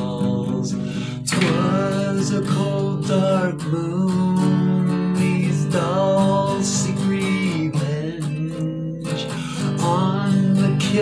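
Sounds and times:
person singing: 0:00.0 - 0:11.0
strummed acoustic guitar: 0:00.0 - 0:11.0.

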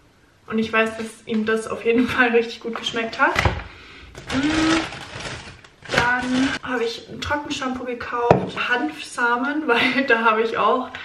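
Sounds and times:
rustling of shopping bags: 0:04.1 - 0:06.7
person humming: 0:04.3 - 0:04.9.

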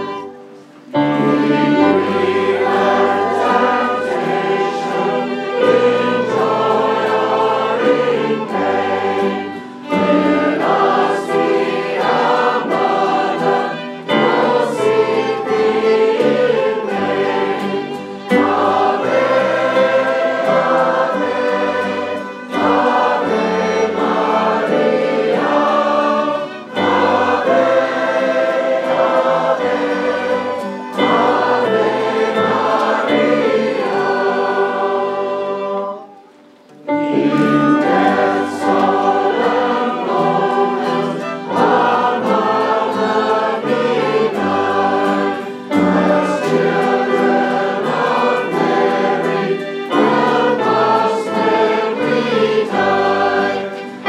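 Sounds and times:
choir singing a hymn: 0:00.0 - 0:54.0
keyboard tuba and violins: 0:00.0 - 0:54.0.

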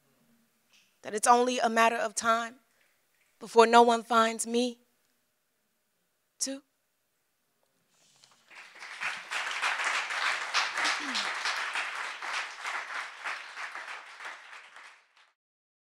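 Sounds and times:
audience applauding: 0:08.2 - 0:15.4.

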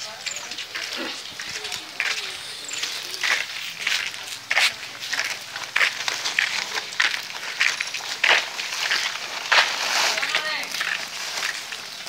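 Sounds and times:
chatter of voices: 0:00.0 - 0:08.4.

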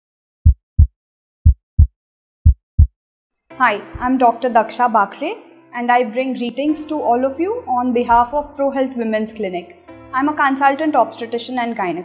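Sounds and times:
heartbeat thumps: 0:00.4 - 0:03.0, 0:04.0 - 0:04.2
background music: 0:03.5 - 0:12.0
woman speaking: 0:03.6 - 0:12.0.

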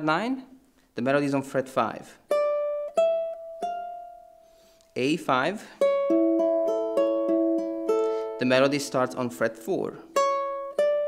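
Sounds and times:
ukulele fingerpicked melody: 0:02.2 - 0:04.9, 0:05.6 - 0:11.0.

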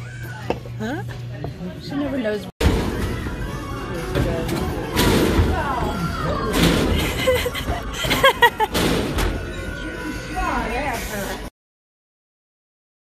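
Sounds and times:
arcade hubbub: 0:00.0 - 0:11.5
background music: 0:02.6 - 0:10.9.

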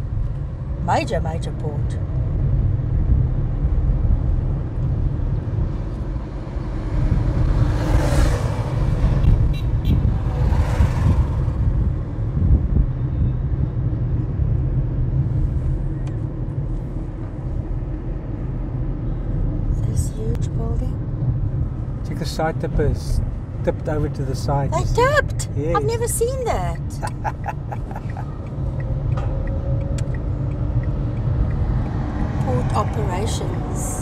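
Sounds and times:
trucks passing: 0:00.0 - 0:12.6, 0:13.8 - 0:34.0
car engine and tyre rumble: 0:00.0 - 0:34.0.

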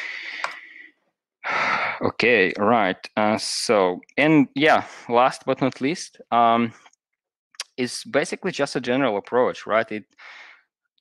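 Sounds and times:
man breathing into microphone: 0:00.0 - 0:02.0, 0:10.2 - 0:10.7.

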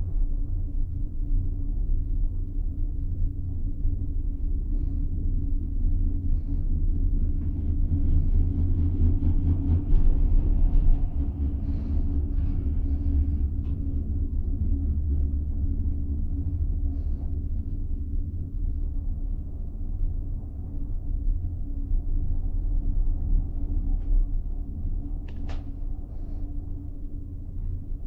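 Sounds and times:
gondola cabin rumble: 0:05.6 - 0:28.0.

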